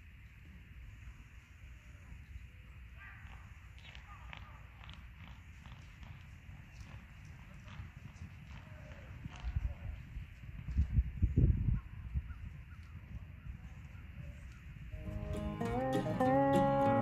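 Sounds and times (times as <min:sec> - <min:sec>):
horse hoofbeats on grass: 0:03.0 - 0:11.3, 0:12.5 - 0:17.0.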